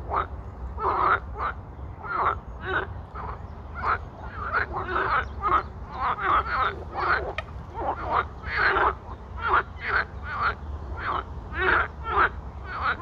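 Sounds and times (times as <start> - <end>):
frogs croaking: 0.0 - 13.0.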